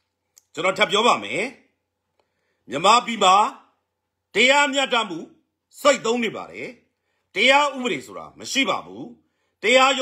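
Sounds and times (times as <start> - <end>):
man speaking: 0.4 - 1.8, 2.6 - 10.0.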